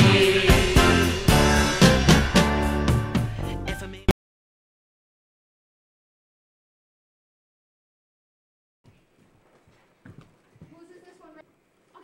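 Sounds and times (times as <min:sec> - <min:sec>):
faint high voice: 0:10.6 - 0:12.0.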